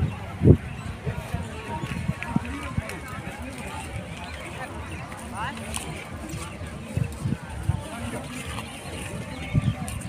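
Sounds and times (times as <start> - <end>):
indistinct chatter of shoppers: 0.0 - 10.0.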